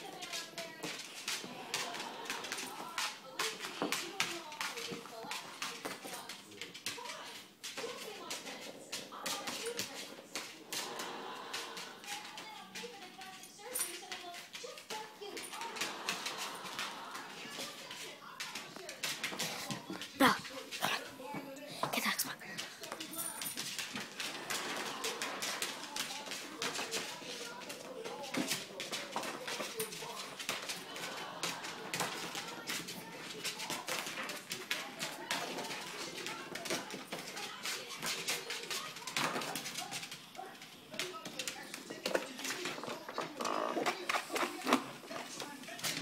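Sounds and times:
paws clicking on tile floor: 0.0 - 46.0.

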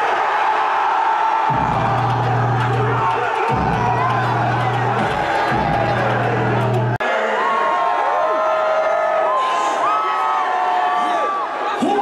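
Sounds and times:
heavy bass line: 1.5 - 7.0
hip-hop music through loudspeakers: 1.5 - 7.0.

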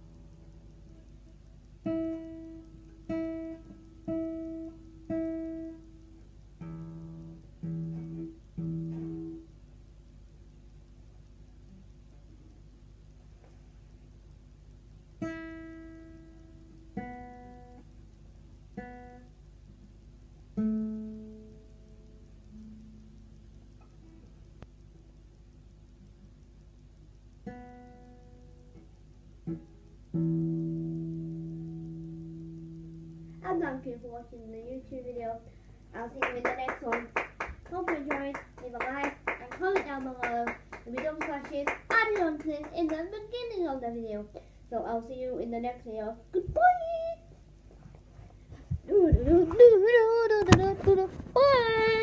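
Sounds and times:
acoustic guitar plucked notes: 0.0 - 9.7, 15.2 - 25.2, 27.3 - 43.6.

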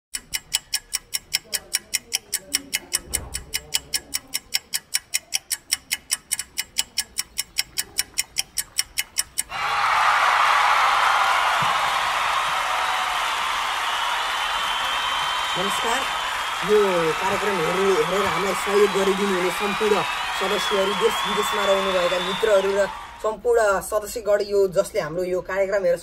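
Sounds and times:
rapid clock-like ticking: 0.1 - 9.5.

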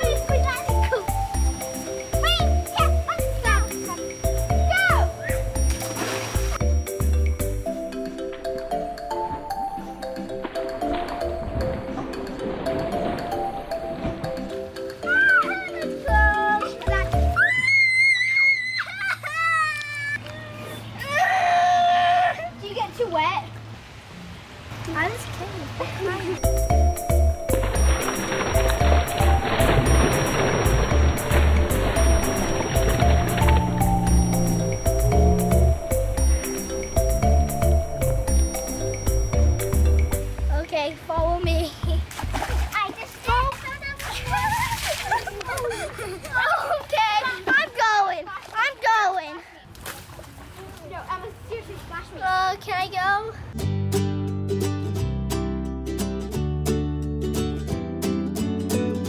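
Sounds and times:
children calling and chattering: 0.0 - 5.6, 14.9 - 21.2, 39.9 - 49.8, 50.4 - 53.6
child screaming playfully: 4.7 - 5.4, 15.0 - 16.7, 17.3 - 22.6, 44.0 - 44.9
water splash: 5.0 - 6.9, 24.6 - 40.1, 41.9 - 45.6.

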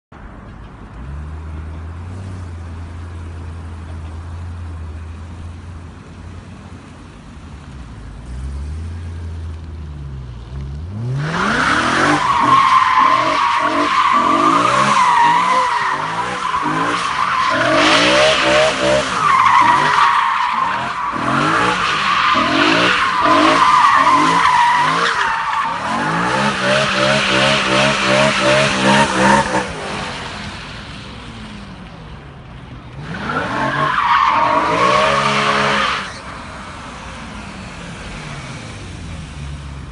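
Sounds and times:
car engine revving: 8.0 - 31.8
tyres squealing: 11.6 - 29.6.

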